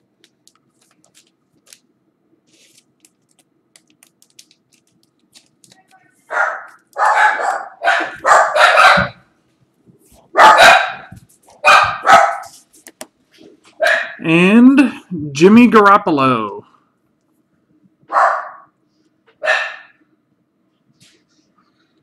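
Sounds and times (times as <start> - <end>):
dog barking loudly: 6.3 - 9.3, 10.3 - 12.6, 13.8 - 14.2, 18.1 - 18.7, 19.4 - 20.0.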